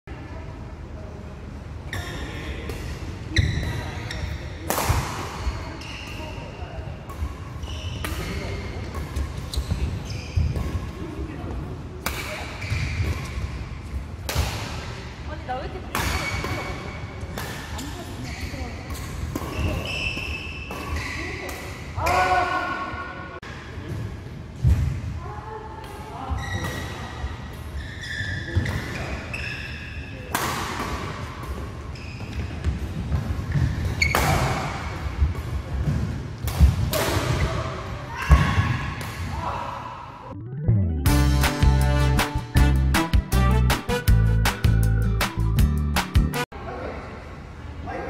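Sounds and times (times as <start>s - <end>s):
shoes squeaking on court: 3.3s - 4.6s, 7.2s - 11.0s, 12.6s - 13.6s, 17.9s - 21.5s, 26.3s - 27.0s, 27.7s - 30.2s, 31.5s - 34.2s
rackets hitting shuttlecock: 4.6s - 5.5s, 18.8s - 22.3s.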